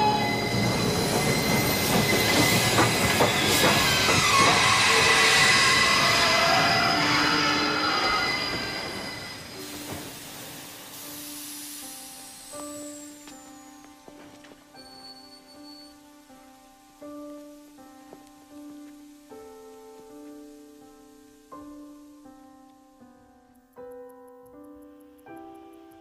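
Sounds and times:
wheels and brakes squealing: 0.0 - 10.8, 14.8 - 16.1
rush of steam: 0.0 - 15.9.

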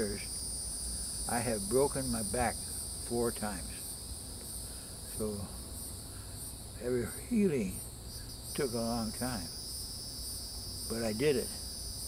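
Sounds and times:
insects calling: 0.0 - 12.0.

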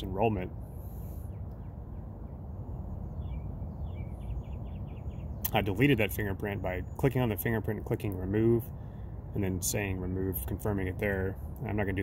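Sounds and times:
small bird chirping: 1.2 - 7.3.

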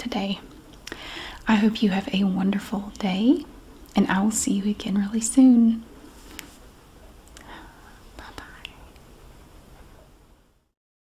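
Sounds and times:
low room hiss: 0.0 - 10.8.

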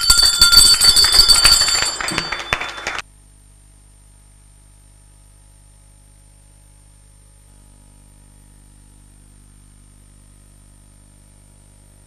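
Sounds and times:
bell ringing: 0.0 - 3.0
applause: 0.0 - 3.1.

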